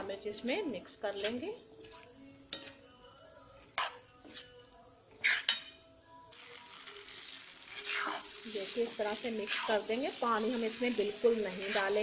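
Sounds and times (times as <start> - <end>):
spatula scraping a wok: 0.3 - 3.0, 3.6 - 12.0
vegetables sizzling in oil: 6.3 - 12.0.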